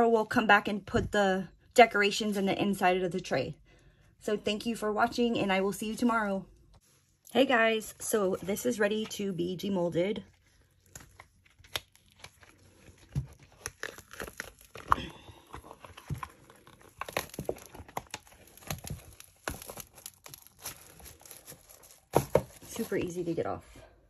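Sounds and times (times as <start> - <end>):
silicone mold peeling off resin: 10.3 - 23.0.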